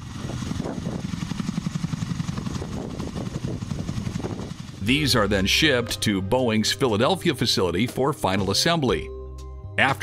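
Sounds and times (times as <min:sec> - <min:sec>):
helicopter rotors beating: 0:00.0 - 0:07.8.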